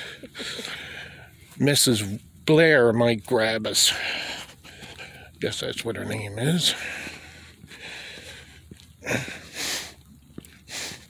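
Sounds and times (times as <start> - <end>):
person breathing close to microphone: 0.0 - 1.5, 6.7 - 10.0, 10.7 - 11.0
faint footsteps: 6.6 - 11.0.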